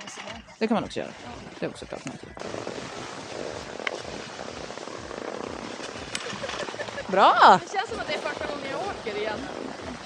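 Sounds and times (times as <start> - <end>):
skis sliding over snow: 1.0 - 10.0.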